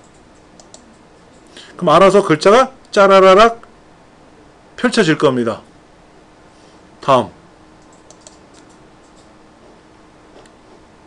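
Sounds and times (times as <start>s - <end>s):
computer mouse clicks: 0.0s - 1.5s, 7.8s - 9.3s.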